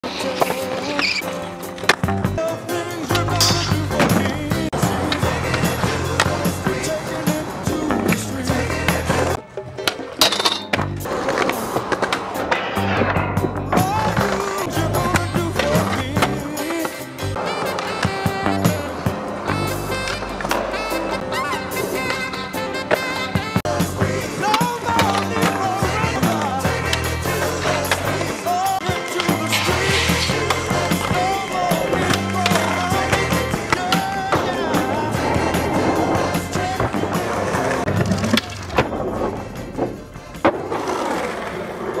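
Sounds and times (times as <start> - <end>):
skateboard clacking on ground: 0.0 - 2.2, 3.0 - 8.4, 9.3 - 23.6, 24.3 - 42.0
music: 0.0 - 42.0
skateboard grinding on rail: 0.0 - 42.0
song with singing and drums: 2.2 - 9.4, 13.4 - 19.1, 23.3 - 38.0.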